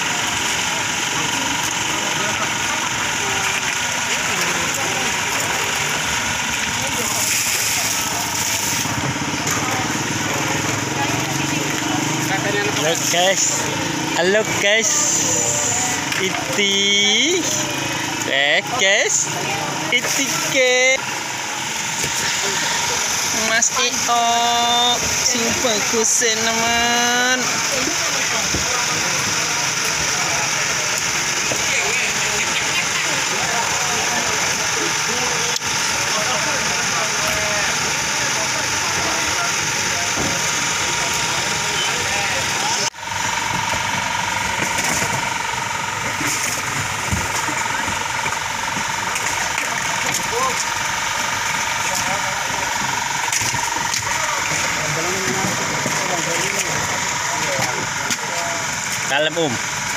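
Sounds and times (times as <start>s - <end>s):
crowd chatter: 0.0s - 59.9s
engine idling: 0.0s - 59.9s
faint voices talking: 0.0s - 59.9s.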